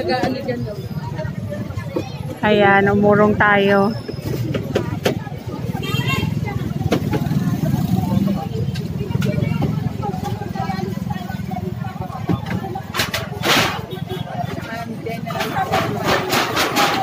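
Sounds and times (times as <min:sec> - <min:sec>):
workers talking: 0:00.0 - 0:17.0.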